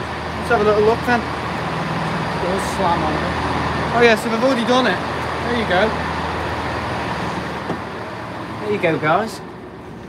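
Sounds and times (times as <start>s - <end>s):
stationary train humming: 0.0s - 10.0s.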